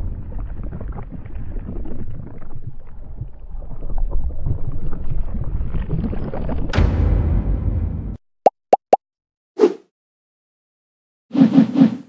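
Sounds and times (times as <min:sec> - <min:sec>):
small crackles: 0:00.0 - 0:06.6
deep rumble: 0:00.0 - 0:08.2.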